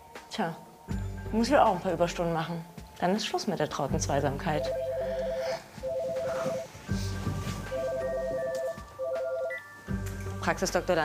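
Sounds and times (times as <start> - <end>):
background music: 0.0 - 11.0
telephone ringing: 4.6 - 6.7, 7.7 - 9.8.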